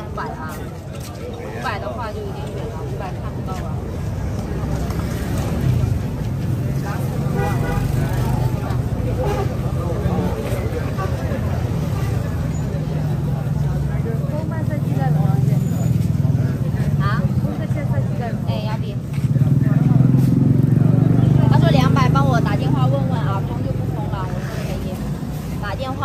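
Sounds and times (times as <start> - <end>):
people talking: 0.0 - 26.0.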